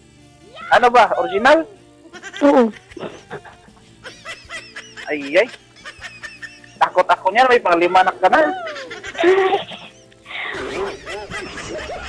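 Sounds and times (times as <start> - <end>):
person laughing: 2.2 - 7.0, 8.4 - 12.0.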